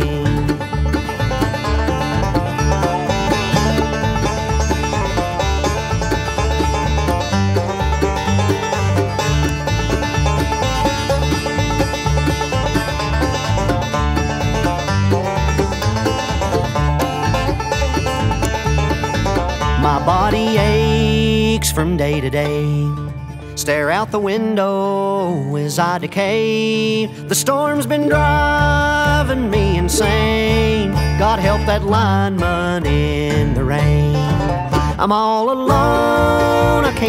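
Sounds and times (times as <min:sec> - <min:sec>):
person singing: 0:00.0 - 0:00.7, 0:19.8 - 0:23.0, 0:23.6 - 0:37.0
acoustic guitar: 0:00.0 - 0:37.0
banjo picking: 0:00.0 - 0:37.0
upright bass line: 0:00.0 - 0:37.0.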